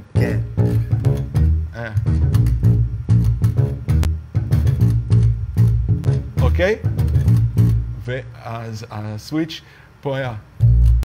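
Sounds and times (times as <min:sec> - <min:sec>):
funk bass guitar line: 0:00.0 - 0:08.1, 0:10.6 - 0:11.0.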